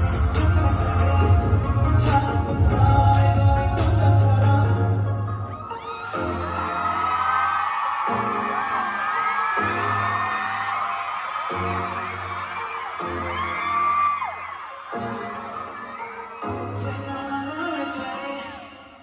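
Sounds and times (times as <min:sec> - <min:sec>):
audience screaming and whooping: 0:00.0 - 0:18.7
concert music over loudspeakers: 0:00.0 - 0:19.0.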